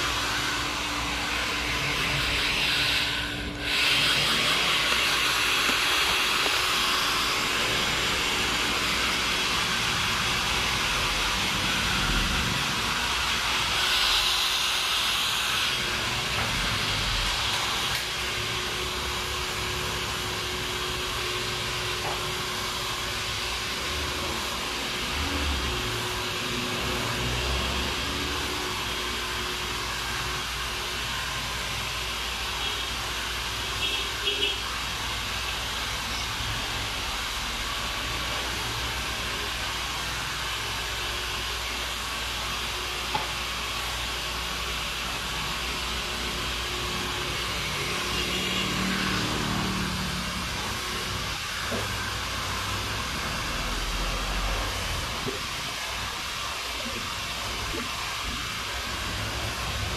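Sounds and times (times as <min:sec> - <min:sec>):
hair dryer blowing: 0:00.0 - 0:59.9.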